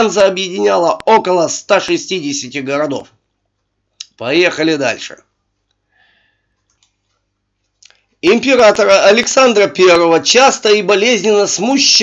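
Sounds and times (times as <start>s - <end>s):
faint mouse clicks: 6.5s - 8.0s.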